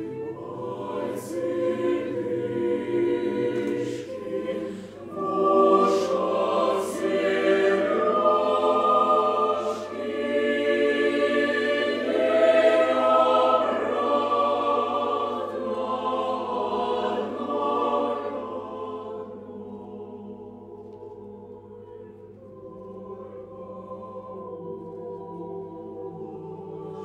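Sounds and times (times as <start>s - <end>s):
mixed choir singing a cappella: 0.0s - 27.0s.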